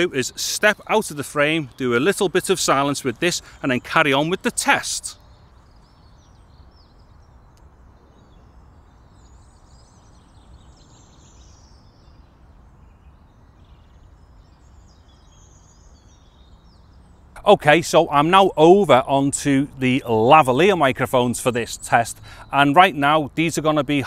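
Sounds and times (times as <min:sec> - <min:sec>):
faint bird chirps: 0:01.4 - 0:17.5
faint click: 0:07.5 - 0:07.7.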